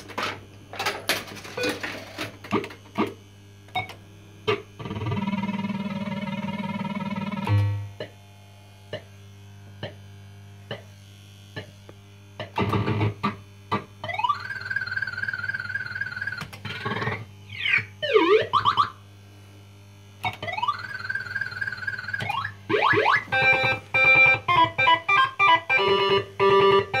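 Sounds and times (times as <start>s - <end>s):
fruit machine electronic effects: 2.5s - 8.2s, 9.8s - 19.0s, 20.2s - 27.0s
electronic bleeps: 16.0s - 18.9s, 20.3s - 27.0s.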